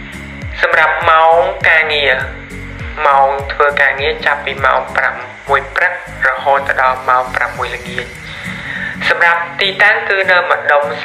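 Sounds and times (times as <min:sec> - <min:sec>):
low music bed: 0:00.0 - 0:11.0
person talking: 0:00.6 - 0:11.0.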